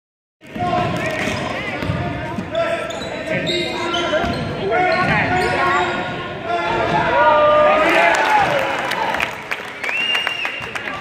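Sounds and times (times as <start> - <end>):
voices and chatter: 0.5 - 8.0.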